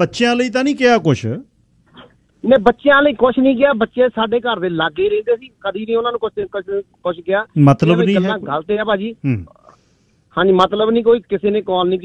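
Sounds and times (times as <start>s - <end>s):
man speaking: 0.0s - 1.4s, 7.6s - 8.5s, 9.2s - 9.5s.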